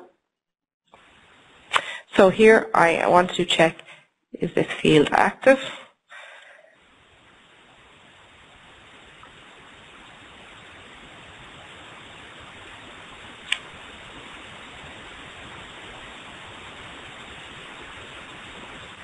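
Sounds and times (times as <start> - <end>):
background hiss: 1.0 - 19.0
sharp click: 13.4 - 13.7.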